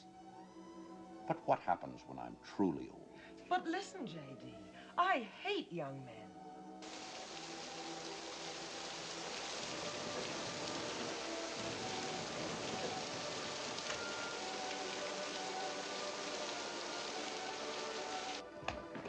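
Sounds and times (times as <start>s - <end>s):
film score music: 0.0s - 19.0s
heavy rain falling: 6.8s - 19.0s.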